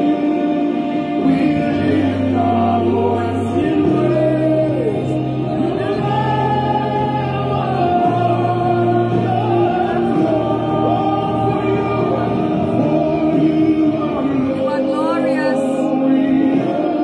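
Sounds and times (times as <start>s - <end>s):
voices singing gospel: 0.0s - 17.0s
low bass notes: 1.2s - 15.8s.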